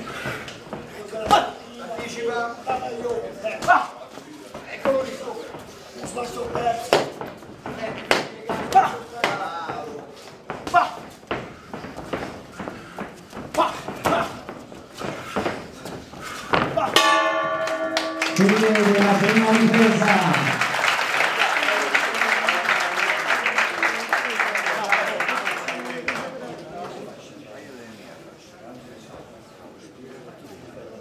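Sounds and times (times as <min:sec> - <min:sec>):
crowd applause and cheering: 0:17.7 - 0:25.7.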